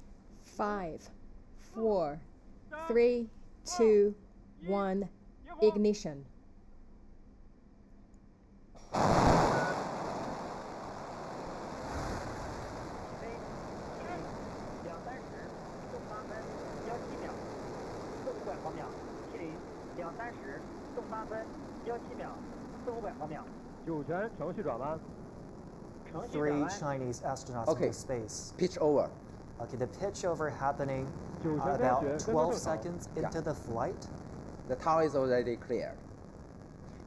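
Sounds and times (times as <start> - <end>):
rocket engines rumbling: 9.0 - 37.0.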